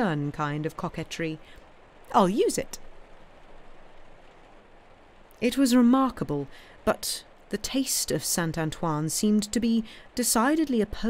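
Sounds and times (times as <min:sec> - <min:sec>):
rain hissing: 0:00.0 - 0:11.0.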